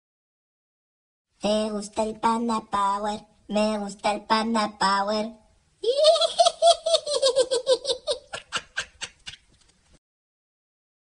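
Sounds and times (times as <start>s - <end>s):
high-pitched laughter: 5.8s - 9.6s.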